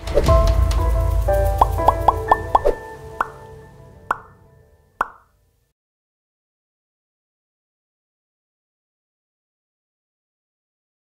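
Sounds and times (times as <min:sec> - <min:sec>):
low musical swell: 0:00.0 - 0:05.0.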